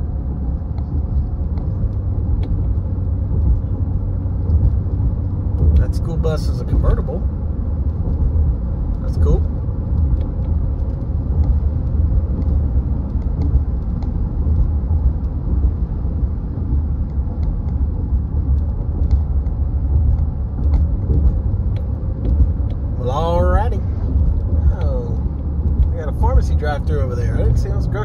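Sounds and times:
road and engine rumble: 0:00.0 - 0:28.0.

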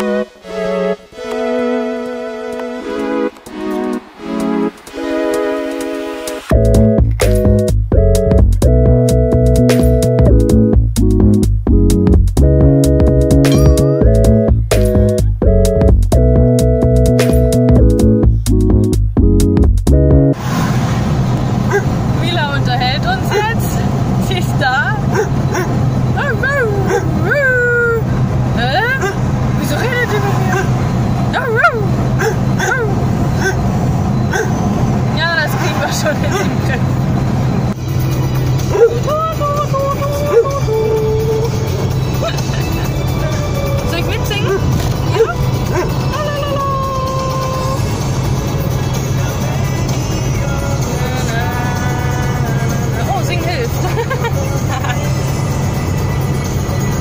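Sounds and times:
car engine and road hum: 0:06.3 - 0:57.0
dog whining and yipping: 0:21.7 - 0:21.9, 0:25.0 - 0:28.1, 0:28.8 - 0:29.2, 0:30.5 - 0:34.7, 0:36.3 - 0:36.6, 0:38.7 - 0:41.6, 0:44.3 - 0:47.8.

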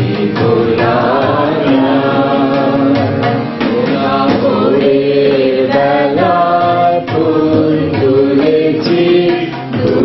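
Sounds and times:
voices singing unaccompanied: 0:00.0 - 0:10.0.

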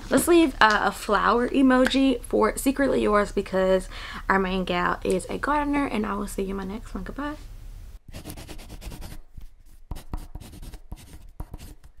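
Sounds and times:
pen scratching on paper: 0:08.1 - 0:12.0.

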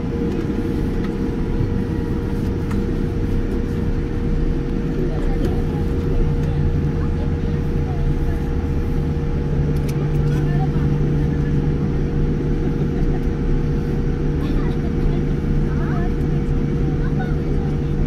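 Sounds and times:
constant hum: 0:00.0 - 0:18.0
low rumble: 0:00.0 - 0:18.0.

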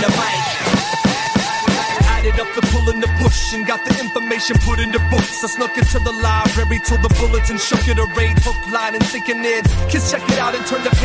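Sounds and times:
hip hop beat with deep bass: 0:00.0 - 0:11.0
rapped vocals: 0:00.0 - 0:11.0.

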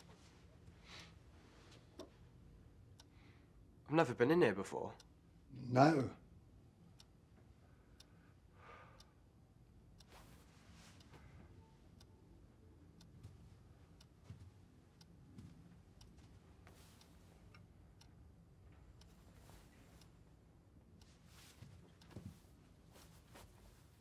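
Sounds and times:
clock ticking: 0:00.0 - 0:00.2, 0:01.9 - 0:24.0
soft rustles: 0:10.0 - 0:11.5, 0:15.3 - 0:17.6, 0:19.0 - 0:20.2, 0:21.0 - 0:24.0.

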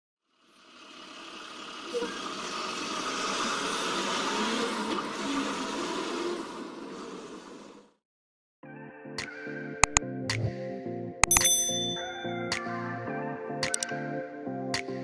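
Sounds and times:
sharp click: 0:11.2 - 0:12.6, 0:13.6 - 0:13.9.

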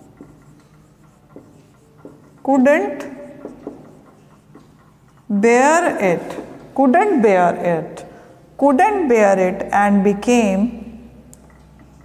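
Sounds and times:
marker tip tapping board: 0:00.0 - 0:05.3
marker writing on whiteboard: 0:00.0 - 0:07.2, 0:11.4 - 0:12.0.

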